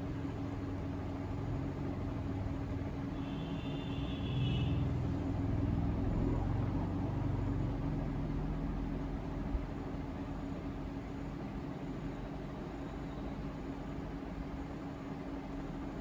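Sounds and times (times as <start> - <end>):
steady hum: 0.0 - 16.0.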